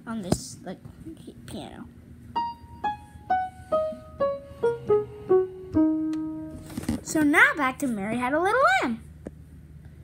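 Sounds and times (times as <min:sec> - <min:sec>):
slow falling piano tune: 0:02.4 - 0:06.7.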